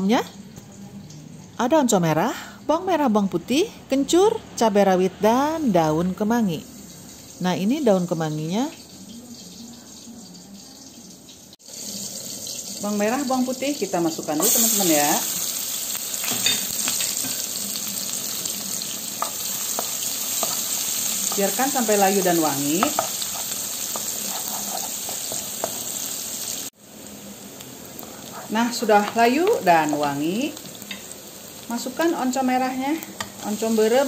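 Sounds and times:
oil sizzling in a wok: 0:05.2 - 0:34.0
wooden spatula stirring: 0:22.8 - 0:25.8.

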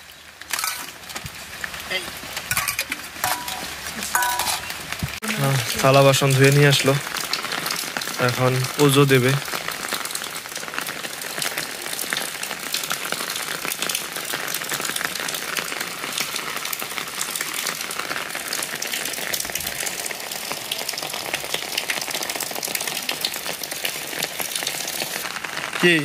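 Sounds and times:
steady rain falling: 0:00.0 - 0:26.0.

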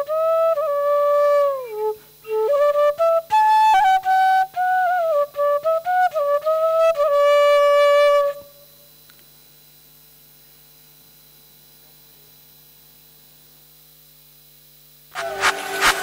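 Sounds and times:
flute note: 0:00.0 - 0:08.6, 0:15.1 - 0:16.0
low electrical hum: 0:00.0 - 0:16.0.

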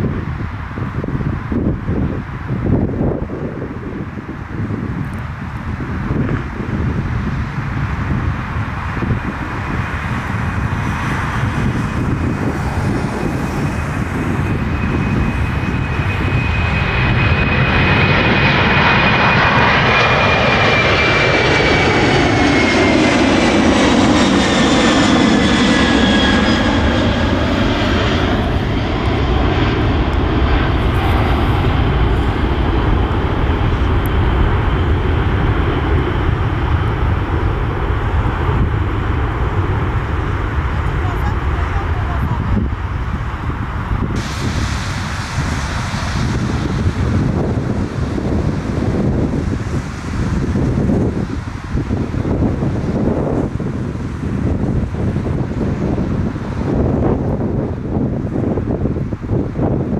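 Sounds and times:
high engine whine: 0:00.0 - 0:59.9
jet engines at takeoff: 0:00.0 - 0:59.9.

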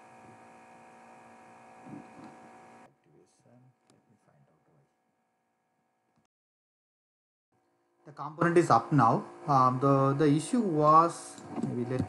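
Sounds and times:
electrical mains hum: 0:00.0 - 0:04.9, 0:08.1 - 0:12.0.

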